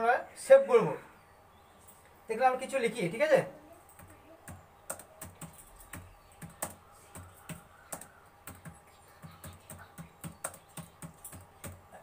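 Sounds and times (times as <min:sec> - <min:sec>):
keyboard keystrokes clicking: 0:04.0 - 0:11.8.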